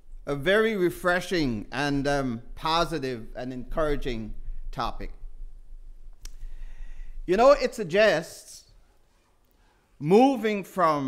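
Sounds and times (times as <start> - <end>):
steady low hum: 0.0 - 8.8
faint click: 6.1 - 6.5.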